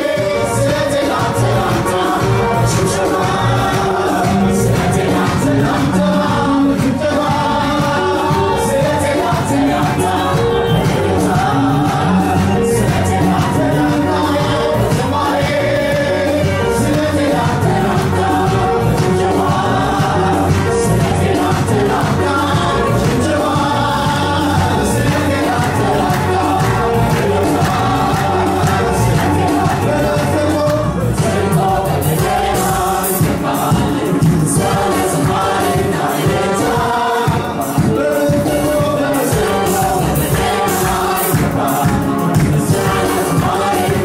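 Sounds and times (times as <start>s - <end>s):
choir singing gospel music: 0.0s - 44.0s
instrumental backing with bass: 0.0s - 44.0s.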